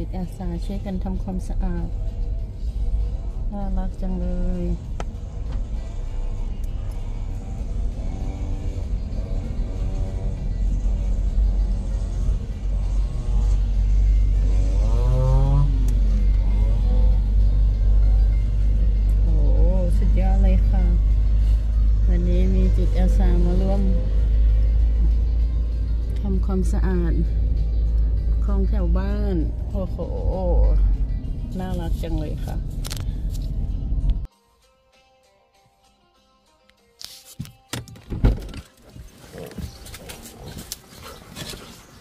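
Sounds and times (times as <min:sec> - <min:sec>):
road rumble inside car: 0:00.0 - 0:34.3, 0:38.2 - 0:42.0
music with singing voice: 0:00.0 - 0:37.8.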